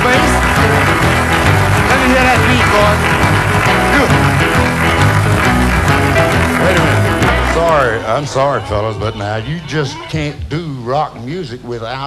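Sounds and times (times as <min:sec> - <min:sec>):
upright double bass: 0:00.0 - 0:09.2
electric and acoustic guitars: 0:00.0 - 0:09.8.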